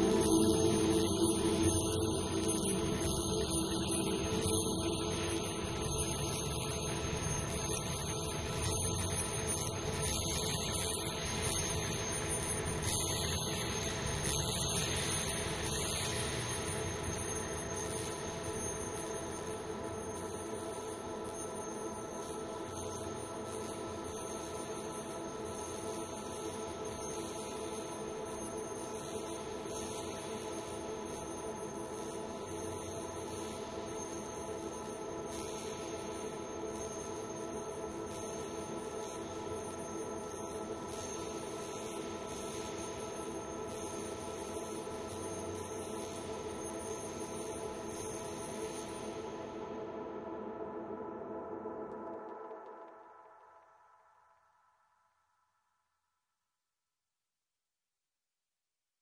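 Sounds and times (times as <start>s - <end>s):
electronic drone tones: 0.0s - 53.8s
crackling fluttering noise: 0.0s - 54.1s
high whistling whine: 0.0s - 54.7s.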